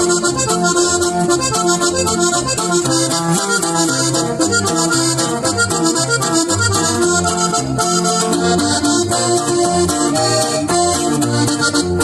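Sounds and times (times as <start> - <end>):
acoustic guitar rhythm: 0.0 - 12.0
button accordion melody: 0.0 - 12.0.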